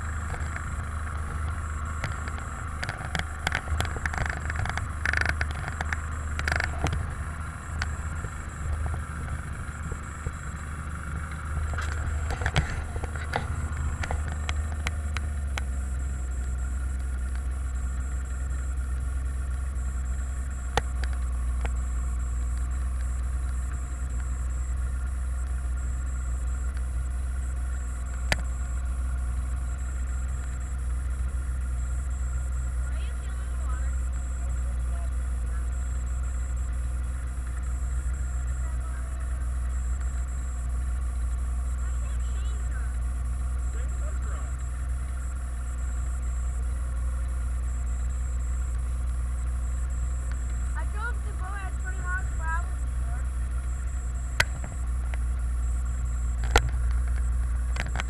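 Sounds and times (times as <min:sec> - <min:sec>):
boat engine idling: 0:00.0 - 0:58.0.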